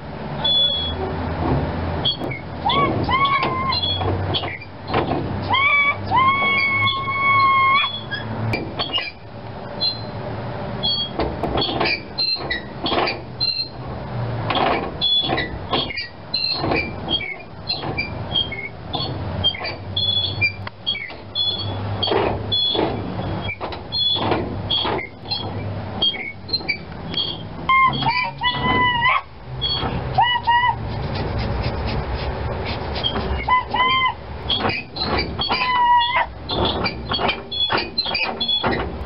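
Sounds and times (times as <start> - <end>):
high wavering squeal: 0.4 - 1.2, 2.0 - 4.7, 5.4 - 9.2, 9.8 - 10.2, 15.0 - 31.0, 32.9 - 38.8
brake wheel clicks and clanks: 0.4 - 10.2, 10.8 - 13.8, 14.4 - 30.6, 32.9 - 39.0.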